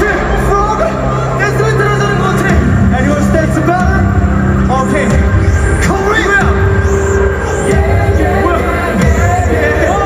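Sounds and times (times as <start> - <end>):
voice over sound system: 0.0 - 6.8
loud amplified music with bass: 0.0 - 10.0.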